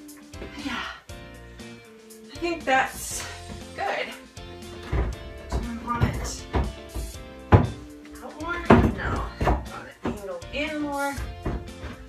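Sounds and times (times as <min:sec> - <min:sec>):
background music: 0:00.0 - 0:12.0
wooden panel knocking on cabinetry: 0:04.8 - 0:10.2, 0:11.2 - 0:12.0.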